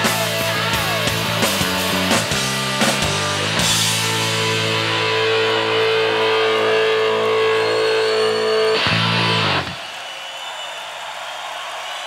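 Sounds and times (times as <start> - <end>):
rock band final chord: 0.0 - 9.8.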